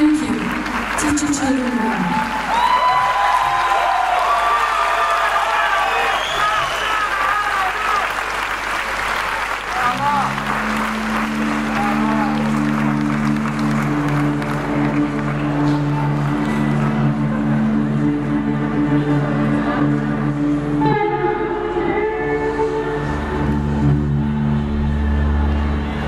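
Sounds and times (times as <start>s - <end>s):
audience applauding and cheering: 0.0s - 19.4s
band holding low chord: 9.8s - 26.0s.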